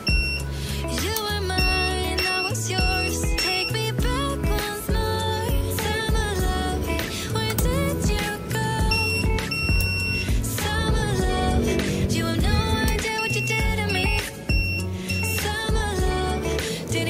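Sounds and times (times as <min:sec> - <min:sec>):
high-pitched electronic beeps: 0:00.0 - 0:00.5, 0:01.6 - 0:04.0, 0:08.8 - 0:10.8, 0:12.7 - 0:15.6
pop song with singing: 0:00.0 - 0:17.0.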